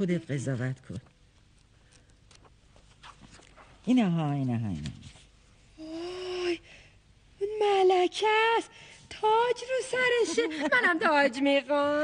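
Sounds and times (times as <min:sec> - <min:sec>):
woman speaking: 0:00.0 - 0:01.1, 0:03.8 - 0:05.0, 0:07.4 - 0:12.0
book pages rustling: 0:00.8 - 0:03.8.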